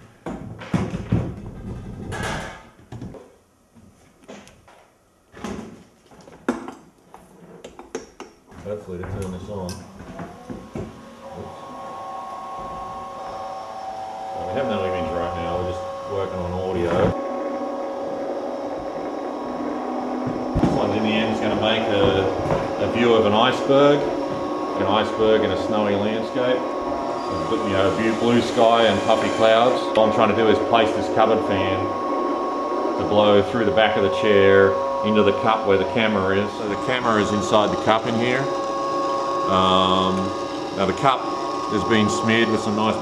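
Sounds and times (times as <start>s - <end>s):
machine motors and fan humming: 8.5s - 43.0s.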